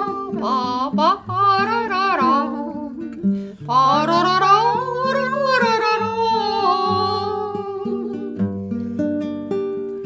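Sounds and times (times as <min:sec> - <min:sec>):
woman humming a melody: 0:00.0 - 0:08.6
acoustic guitar: 0:00.0 - 0:10.0.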